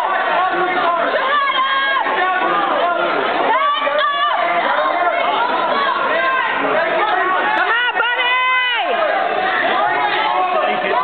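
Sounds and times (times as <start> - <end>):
crowd chattering and shouting: 0.0 - 11.0.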